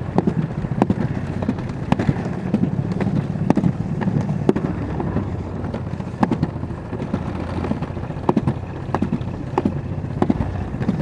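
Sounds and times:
sled knocking: 0.0 - 11.0
sled rumbling down track: 0.0 - 11.0.

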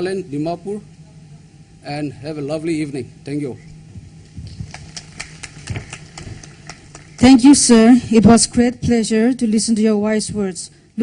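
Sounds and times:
low steady hum: 0.0 - 11.0
audience applause: 4.6 - 7.4.

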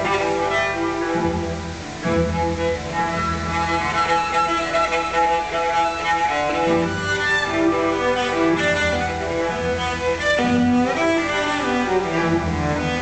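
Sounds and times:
bowed cello sustained notes: 0.0 - 13.0
low double bass notes: 0.0 - 13.0.

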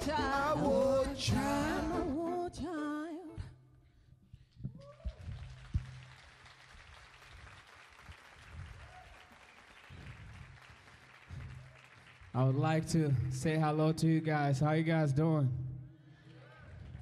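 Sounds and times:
audience whoops: 4.7 - 5.6, 8.6 - 10.2
audience applauding: 4.8 - 13.4.

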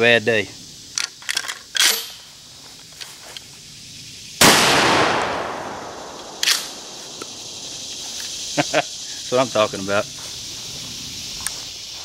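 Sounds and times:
shotgun shot with echo: 4.4 - 7.0.

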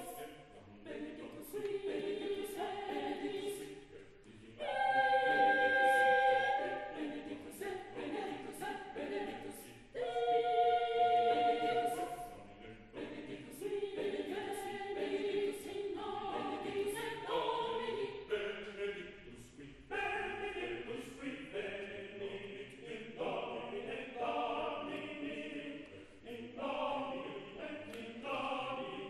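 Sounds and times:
mixed choir singing: 0.0 - 29.0.

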